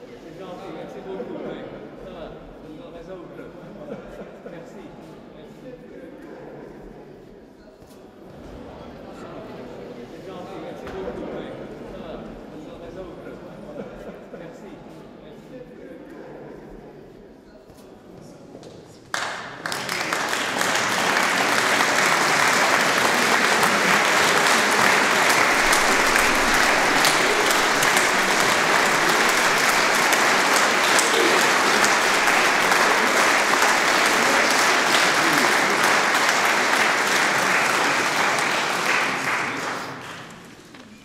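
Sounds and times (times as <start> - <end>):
audience applauding: 19.1 - 40.7.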